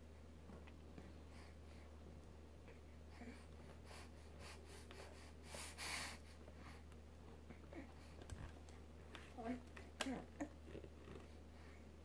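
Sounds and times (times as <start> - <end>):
low steady hum: 0.0 - 12.0
soft breath-like rush: 2.7 - 6.9.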